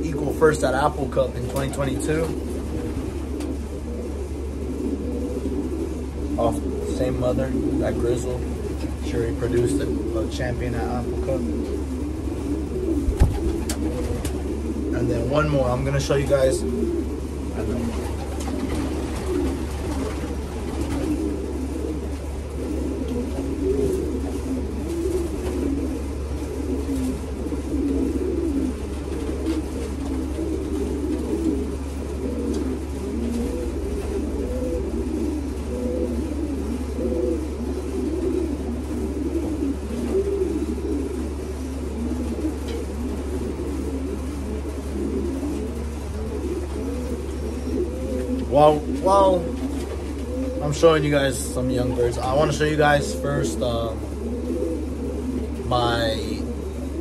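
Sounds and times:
pigeons cooing: 0.0s - 57.0s
steady low hum: 0.0s - 57.0s.

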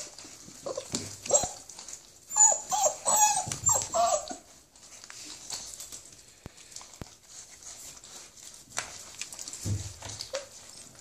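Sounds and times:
puppies whining: 0.0s - 5.8s.

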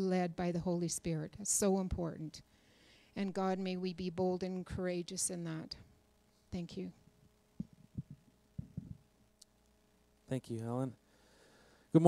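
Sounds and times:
faint steady hum: 0.0s - 12.0s
microphone handling thumps: 7.6s - 9.1s.

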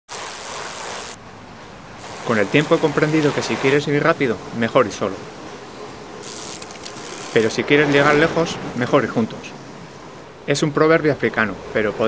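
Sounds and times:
bicycle wind and road noise: 0.1s - 10.5s.

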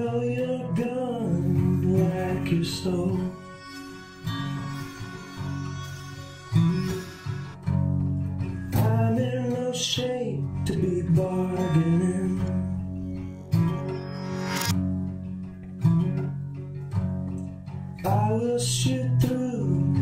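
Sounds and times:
man singing: 0.0s - 7.4s, 8.7s - 12.8s, 18.0s - 20.0s
guitar strumming chords: 0.0s - 20.0s.

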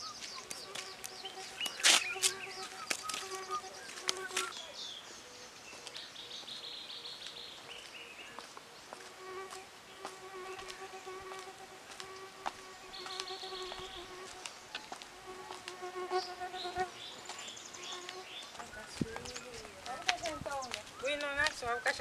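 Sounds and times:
insect buzzing: 0.0s - 4.5s, 9.0s - 18.6s
bird chirps: 0.0s - 8.8s, 12.9s - 14.9s.

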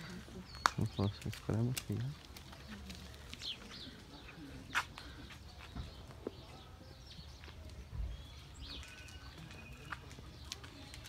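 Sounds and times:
birds chirping: 0.0s - 11.0s
footsteps on paved path: 0.0s - 11.0s
whistled bird notes: 8.0s - 10.0s.

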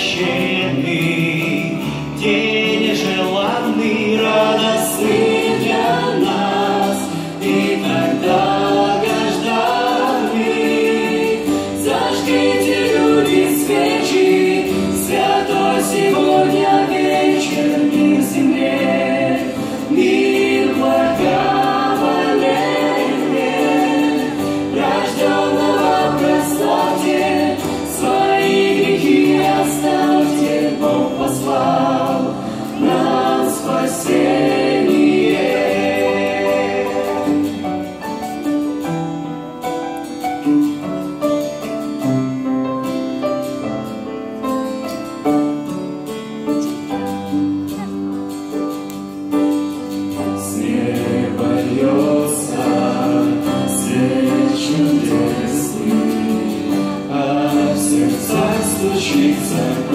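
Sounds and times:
vocal group singing in harmony: 0.0s - 40.1s, 48.8s - 59.9s
acoustic guitar: 0.0s - 59.9s
keyboard: 0.0s - 59.9s.

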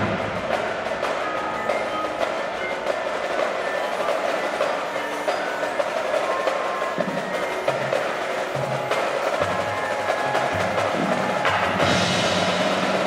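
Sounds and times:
drumline stick strokes: 0.0s - 13.0s
marimba notes: 0.0s - 13.0s.

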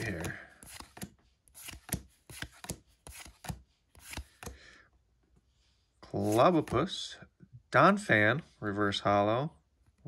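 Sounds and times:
trading cards swishing and snapping: 0.0s - 4.6s.

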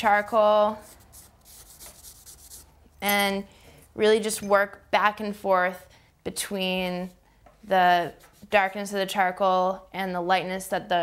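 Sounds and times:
charcoal scratching on paper: 0.8s - 2.7s.

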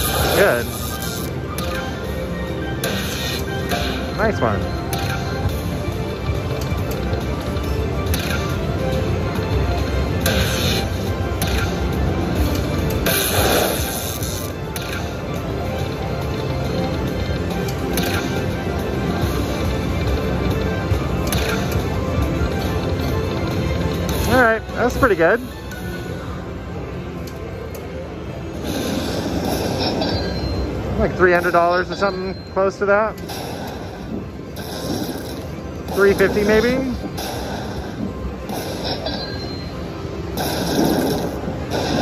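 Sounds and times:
slot machine game music: 0.0s - 42.0s.

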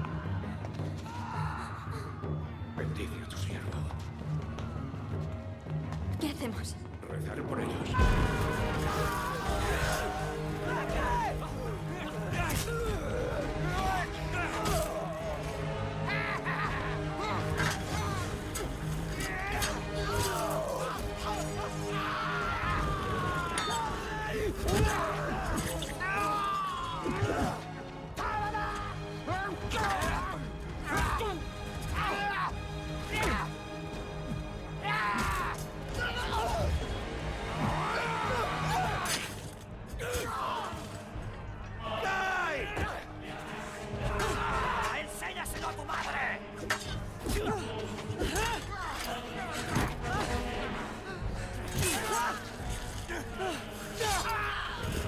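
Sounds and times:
men yelling and screaming: 0.0s - 2.9s, 7.9s - 55.0s
orchestral film score: 0.0s - 55.0s
men shouting: 8.0s - 41.0s, 41.7s - 55.0s.

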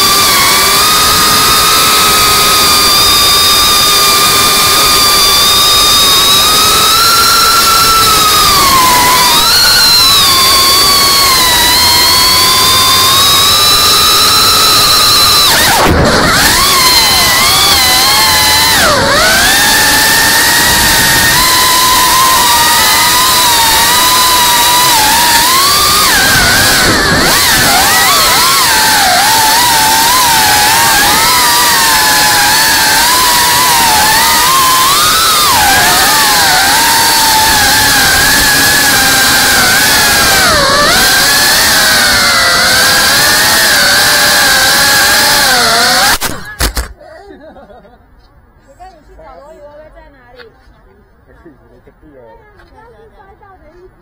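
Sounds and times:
rushing noise: 0.0s - 46.8s
drone motors whining: 0.0s - 47.0s.

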